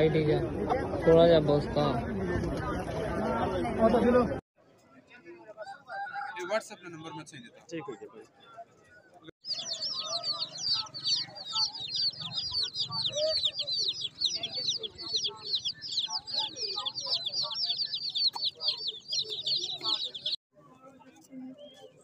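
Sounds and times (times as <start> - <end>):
chicks peeping: 9.4 - 20.4.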